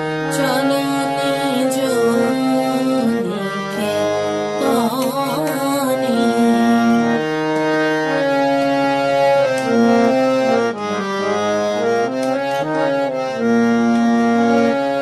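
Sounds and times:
harmonium melody: 0:00.0 - 0:15.0.

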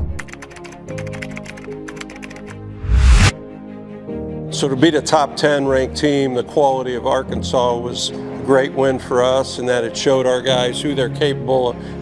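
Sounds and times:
rapid keyboard typing: 0:00.0 - 0:02.6
background music with sustained notes: 0:00.0 - 0:12.0.

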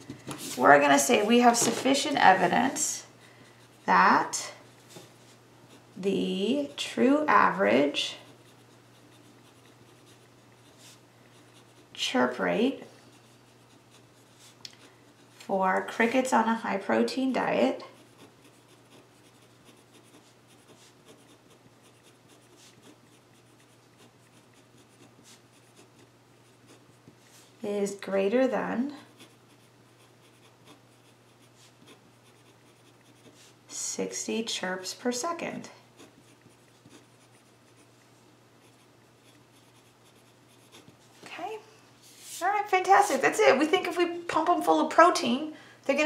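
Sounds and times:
pen scratching on paper: 0:06.5 - 0:12.4, 0:13.2 - 0:15.4, 0:17.9 - 0:26.9, 0:29.1 - 0:33.6, 0:36.0 - 0:37.9, 0:38.6 - 0:41.1.

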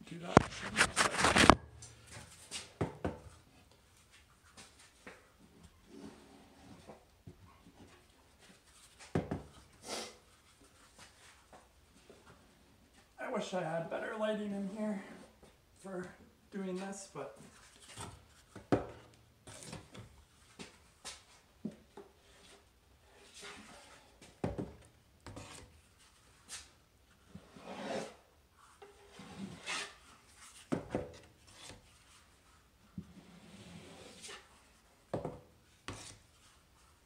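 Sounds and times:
putty knife scraping joint compound: 0:00.3 - 0:02.7, 0:17.5 - 0:24.4, 0:25.2 - 0:26.7, 0:27.3 - 0:32.3, 0:35.7 - 0:36.9.

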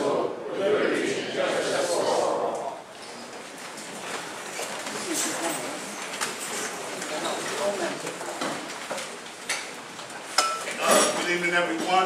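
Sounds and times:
people talking: 0:00.0 - 0:02.9, 0:04.9 - 0:08.7, 0:10.7 - 0:12.0.

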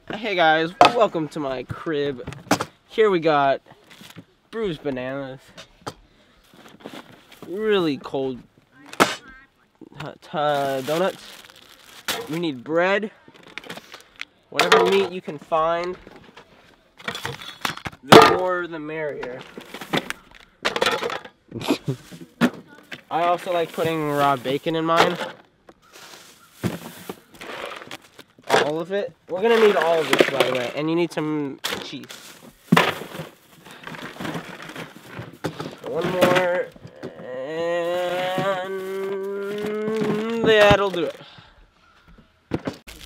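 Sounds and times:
plastic food packages rustling: 0:10.4 - 0:12.6, 0:22.8 - 0:28.8, 0:31.8 - 0:36.9, 0:38.0 - 0:41.2
plastic bags crinkling: 0:10.5 - 0:12.6, 0:25.9 - 0:28.5, 0:37.9 - 0:41.2.

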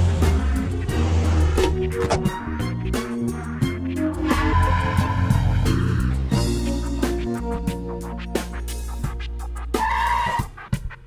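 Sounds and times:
background score music: 0:00.0 - 0:11.0.

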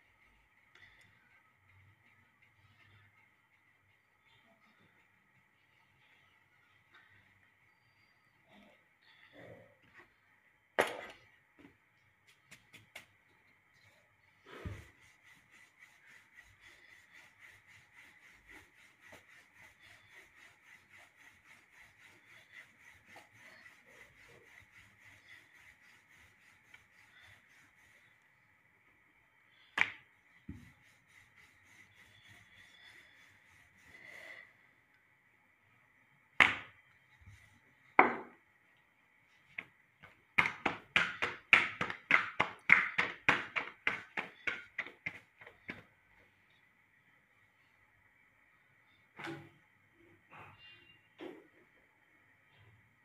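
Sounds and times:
hands slapping dough: 0:12.2 - 0:13.3, 0:29.7 - 0:30.7, 0:36.4 - 0:36.8, 0:39.6 - 0:45.9.

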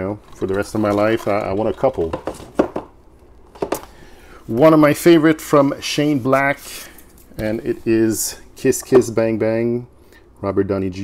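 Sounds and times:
plastic cases clacking: 0:00.3 - 0:03.9.

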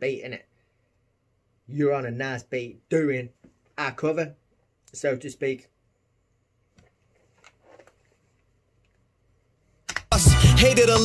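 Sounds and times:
headphones click: 0:09.8 - 0:10.1
rap track: 0:10.0 - 0:11.0.

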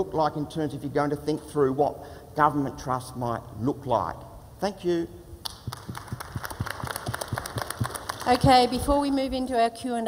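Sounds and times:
audience applauding: 0:05.4 - 0:08.7.

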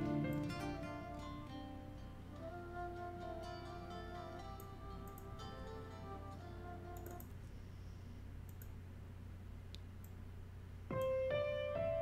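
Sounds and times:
faint low hum: 0:00.0 - 0:12.0
soft clicks: 0:04.6 - 0:05.4, 0:06.9 - 0:07.4, 0:08.4 - 0:08.8, 0:09.7 - 0:10.2.

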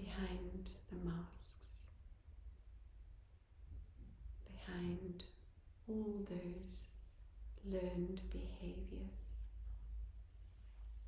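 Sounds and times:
woman speaking softly: 0:00.0 - 0:01.9, 0:04.5 - 0:06.9, 0:07.6 - 0:09.6
low steady hum: 0:00.0 - 0:11.0.

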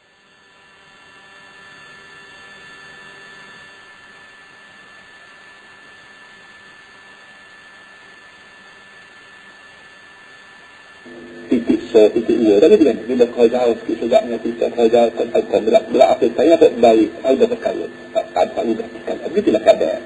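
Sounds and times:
faint electrical hum: 0:00.0 - 0:20.0
thin high whine: 0:00.0 - 0:20.0
recording hiss: 0:11.1 - 0:20.0.

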